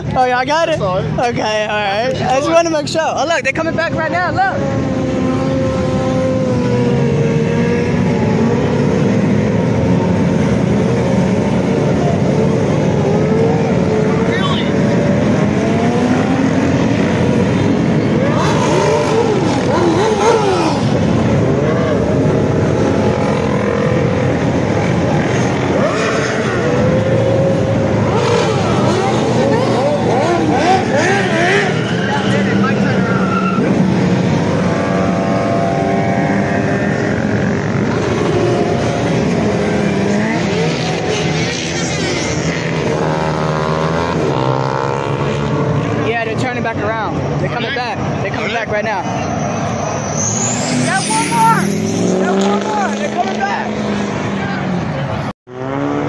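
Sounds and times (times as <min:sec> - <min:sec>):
car engine revving: 0:00.0 - 0:56.0
motorcycle engine revving: 0:04.5 - 0:46.6, 0:50.5 - 0:56.0.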